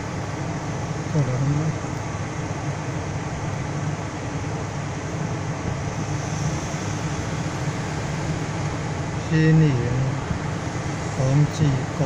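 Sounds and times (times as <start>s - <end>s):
air-conditioning blower: 0.0s - 12.0s
car engine idling: 0.0s - 12.0s.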